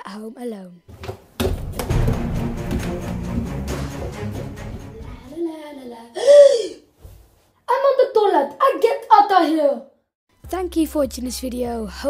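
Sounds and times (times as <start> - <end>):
boy crying out: 6.2 - 6.9
boy screaming: 6.2 - 6.9.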